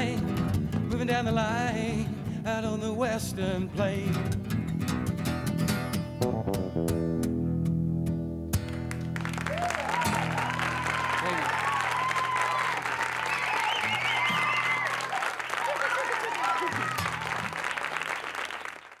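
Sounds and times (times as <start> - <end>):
audience applauding: 8.7 - 19.0
audience cheering calls: 9.4 - 18.8.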